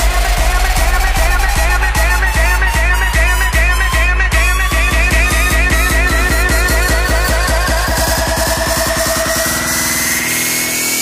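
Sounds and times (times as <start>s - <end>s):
drum roll: 0.0s - 10.2s
bass: 0.0s - 11.0s
rising synth sweep: 0.0s - 11.0s.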